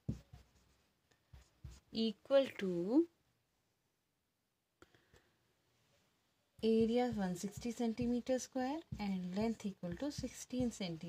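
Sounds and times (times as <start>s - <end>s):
marker pen scratching on whiteboard: 0.0s - 2.1s, 6.6s - 11.0s.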